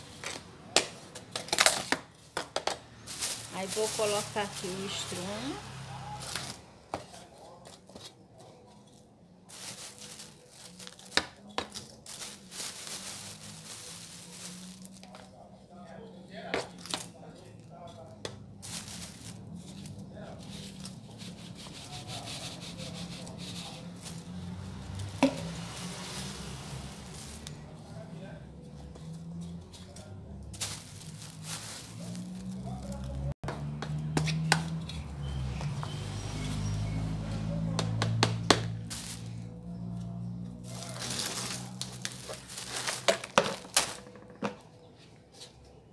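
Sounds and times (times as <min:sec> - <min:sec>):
plastic sack crinkling: 0:02.6 - 0:06.6, 0:09.5 - 0:15.3, 0:18.6 - 0:21.1, 0:23.3 - 0:27.6, 0:30.5 - 0:33.3, 0:38.8 - 0:39.5, 0:40.6 - 0:44.4.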